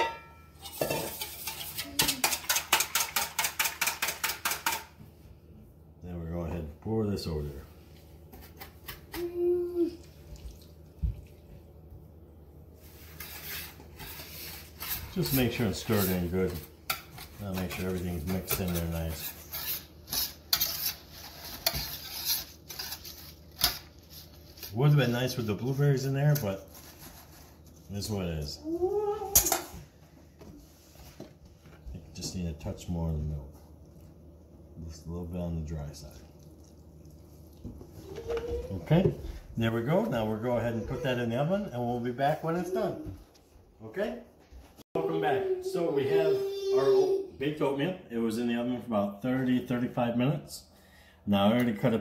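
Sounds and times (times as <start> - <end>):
whisk beating batter in metal bowl: 0.6 - 4.8
whisk scraping wet mixture: 0.6 - 4.8, 12.8 - 28.0.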